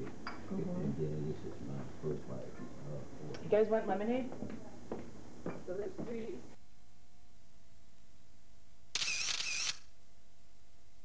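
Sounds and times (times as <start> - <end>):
faint steady hum: 0.0 - 11.0
noisy mechanical burst: 9.0 - 9.9.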